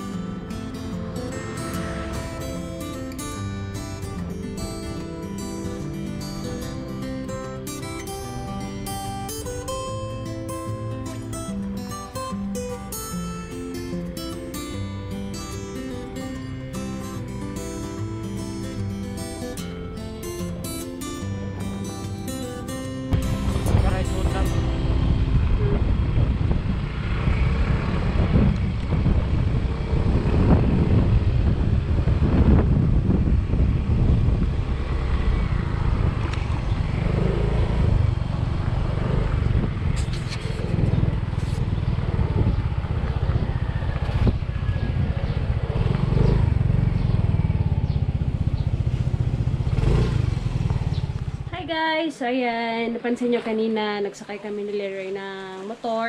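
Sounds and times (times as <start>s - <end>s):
motor scooter running: 0.0s - 7.5s, 23.1s - 51.8s
wind rumble on microphone: 23.1s - 51.5s.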